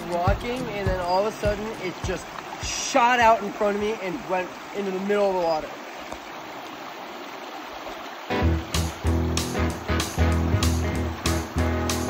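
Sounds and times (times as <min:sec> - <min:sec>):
music with deep bass and beat: 0:00.0 - 0:01.8, 0:08.4 - 0:12.0
river water over gravel: 0:00.0 - 0:12.0.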